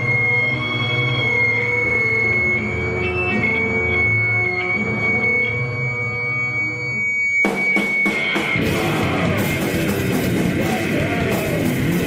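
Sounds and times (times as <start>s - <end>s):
band hard loud hits: 7.5s - 12.0s.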